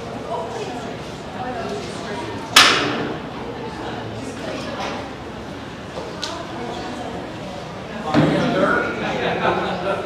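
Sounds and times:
murmur of people talking: 0.0 - 10.0
sharp bang with echo: 2.6 - 3.1.

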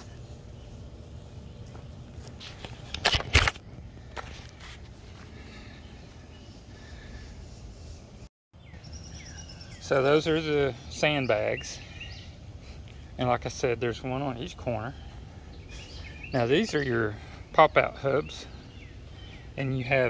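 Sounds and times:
low outdoor background noise: 0.0 - 20.0.

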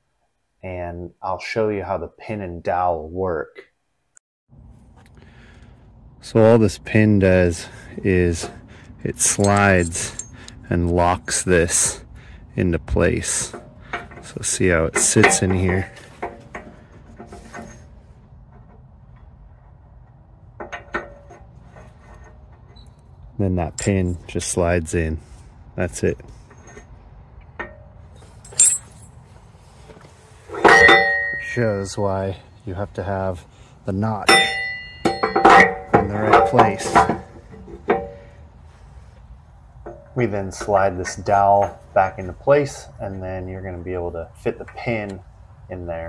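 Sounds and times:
metal pin clinking on steel: 9.3 - 10.6, 27.6 - 29.1.

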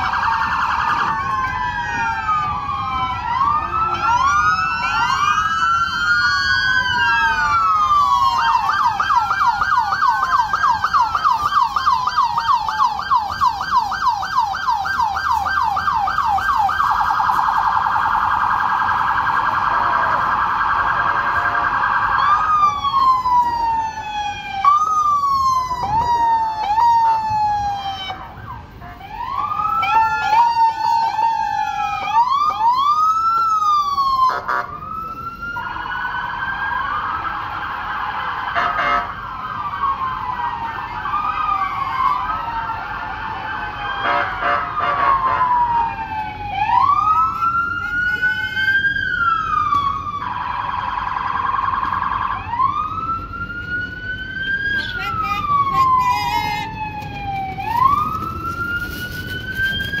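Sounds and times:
police sirens wailing: 0.0 - 60.0.

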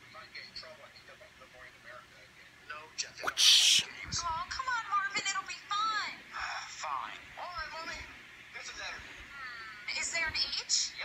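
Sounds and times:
high-pitched puppet voices talking: 3.2 - 3.8.

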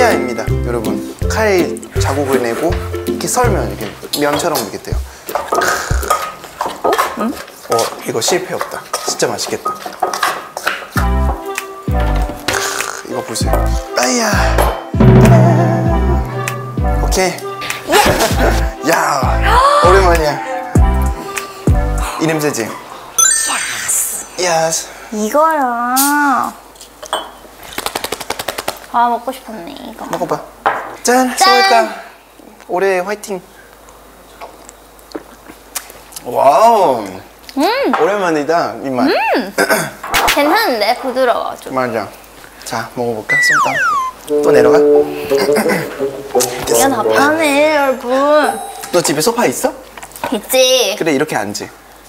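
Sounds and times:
kitchenware clatter: 5.4 - 11.0.

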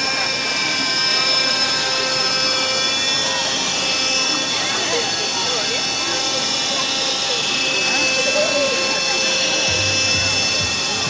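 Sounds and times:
crowd chatter: 0.0 - 11.0
electric motor high-pitched whine: 0.0 - 11.0.

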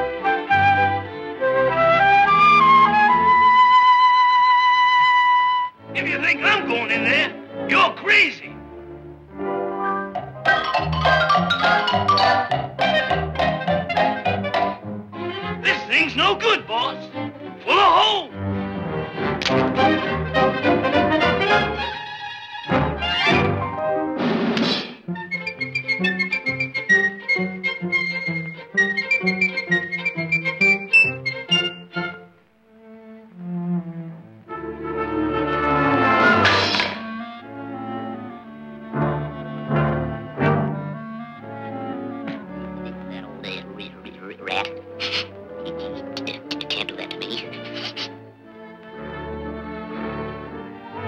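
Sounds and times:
orchestral cartoon music: 0.0 - 51.0
sharp percussive hits: 10.2 - 14.8.

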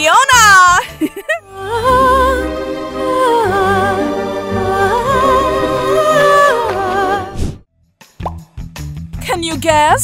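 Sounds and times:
cartoon rising pop and clicks: 8.2 - 8.5.

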